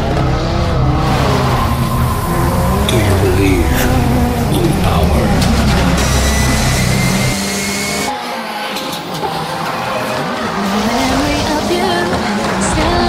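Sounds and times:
car and tyre noise: 0:00.0 - 0:13.0
rally car engine running hard: 0:00.0 - 0:13.0.

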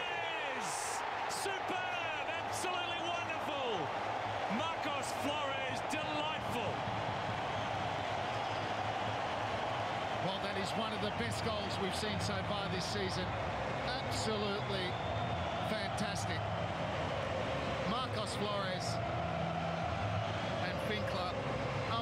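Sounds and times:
stadium crowd cheering: 0:00.0 - 0:22.0.

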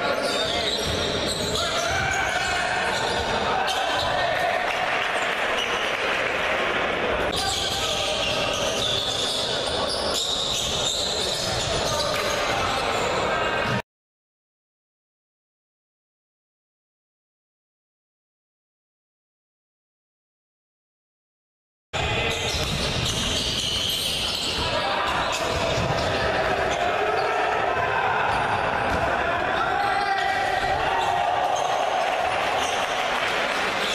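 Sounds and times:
crowd voices: 0:00.0 - 0:13.8, 0:22.0 - 0:33.9.

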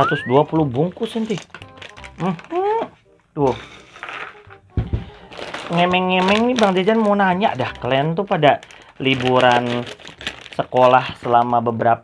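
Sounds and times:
foil snack packets rustling: 0:00.5 - 0:03.0, 0:03.6 - 0:11.7.

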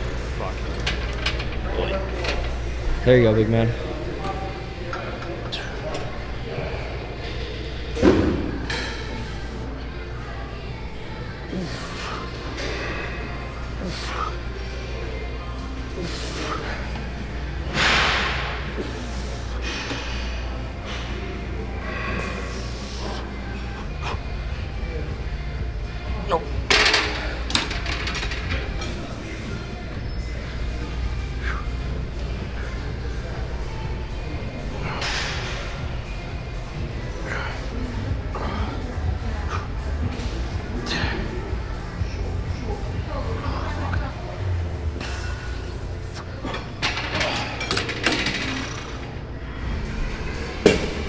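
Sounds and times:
indistinct low voices: 0:00.0 - 0:51.0.

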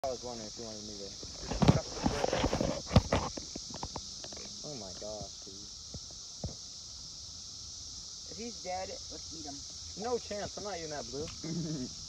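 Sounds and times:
rustling plants: 0:00.2 - 0:05.2.

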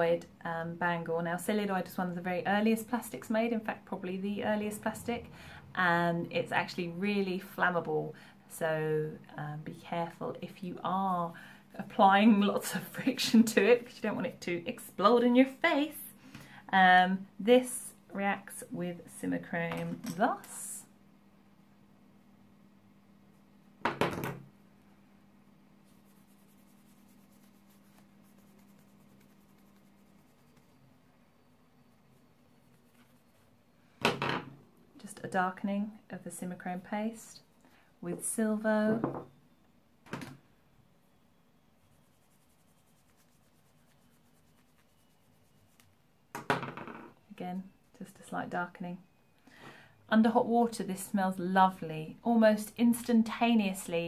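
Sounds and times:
low steady hum: 0:00.0 - 0:54.0
faint light scratches: 0:25.8 - 0:30.8, 0:32.1 - 0:33.5.

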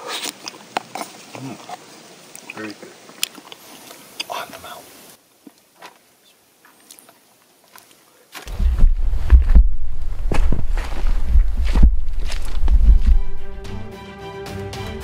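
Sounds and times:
faint rustling: 0:05.8 - 0:13.8
footsteps on rocky ground: 0:06.8 - 0:13.8.

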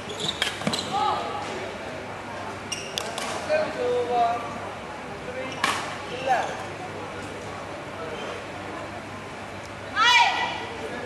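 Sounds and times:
shoe squeaks on court: 0:00.0 - 0:01.0, 0:02.7 - 0:03.2.

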